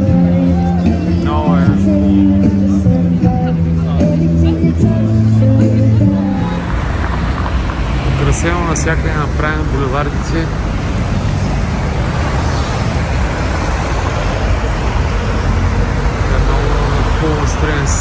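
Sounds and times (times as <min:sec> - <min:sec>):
cars driving past: 0:04.8 - 0:18.0
voices: 0:08.0 - 0:10.7, 0:16.0 - 0:18.0.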